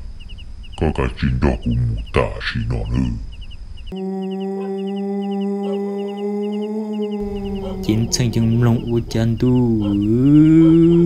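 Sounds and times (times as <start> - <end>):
insect chirps: 0.0 - 11.0.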